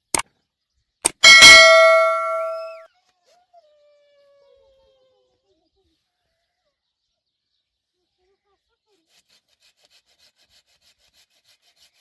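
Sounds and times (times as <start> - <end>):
bell ding: 1.2 - 2.8.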